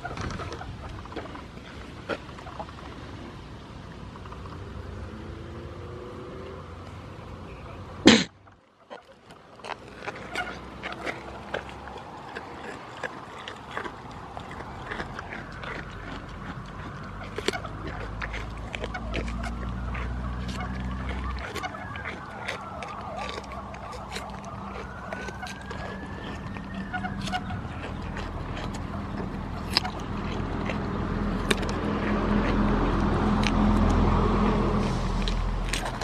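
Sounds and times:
goat crunching cucumber: 0.0 - 36.0.

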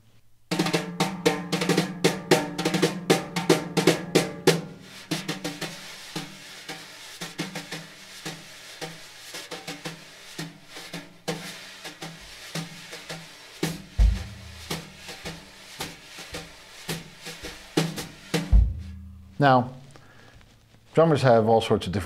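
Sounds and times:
wire brushes on snare drum: 0.5 - 19.9.

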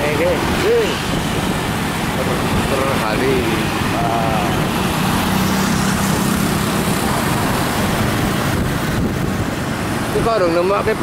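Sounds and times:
wind rushing: 0.0 - 10.4
motorcycle engine humming: 0.0 - 11.0
road noise: 0.0 - 11.0.

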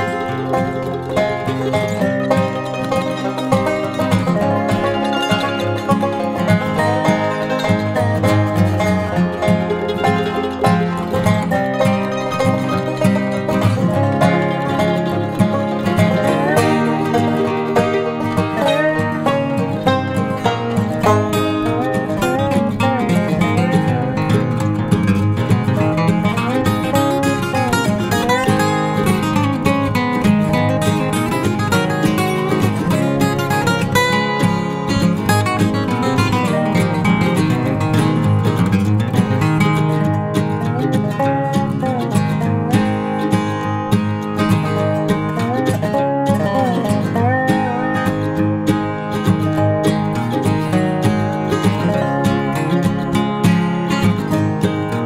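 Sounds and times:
country acoustic guitar music: 0.0 - 55.0.

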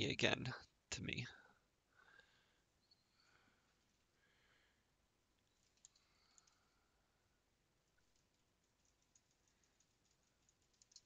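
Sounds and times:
computer keyboard typing: 5.5 - 6.7, 7.9 - 11.0.

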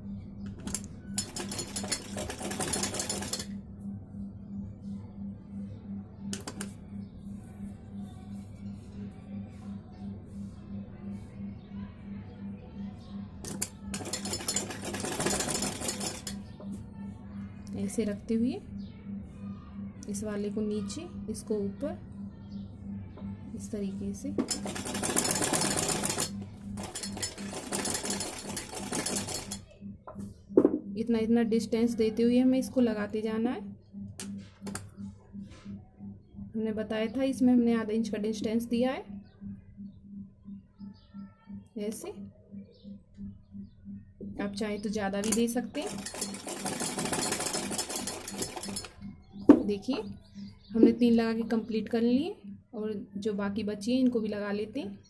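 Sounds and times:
sewing machine stitching: 0.7 - 3.5, 13.5 - 16.4, 24.5 - 29.6, 45.2 - 48.9.

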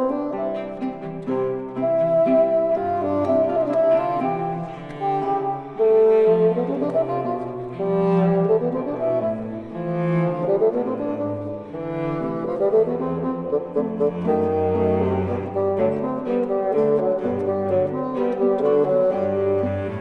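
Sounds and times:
bassoon melody: 0.0 - 20.0
cello bass line: 0.0 - 20.0
guitar accompaniment: 0.0 - 20.0.

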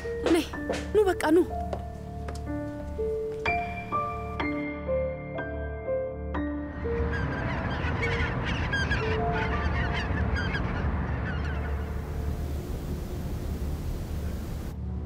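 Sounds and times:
gulls crying: 6.8 - 14.7
seaside background rush: 6.9 - 14.8.

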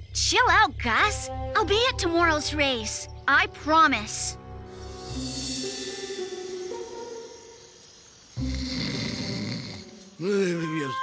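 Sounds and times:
music cue on held notes: 1.0 - 8.8
cartoon voice snoring: 8.4 - 10.4.

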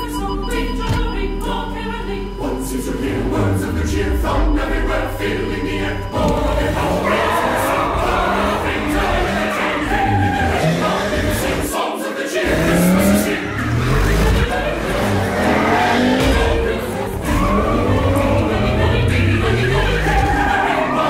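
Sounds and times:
choir singing: 0.0 - 21.0
sports car engines revving: 3.1 - 11.7, 12.4 - 21.0
tires squealing: 6.6 - 11.7, 12.4 - 21.0.

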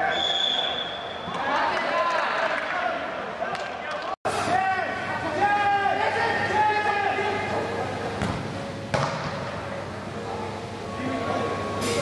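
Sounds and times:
players shouting in echoing hall: 0.0 - 8.2.

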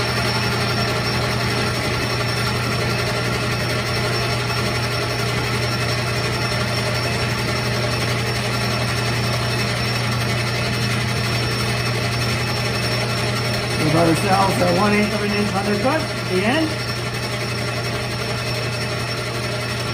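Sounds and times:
metal lathe humming: 0.0 - 19.9.

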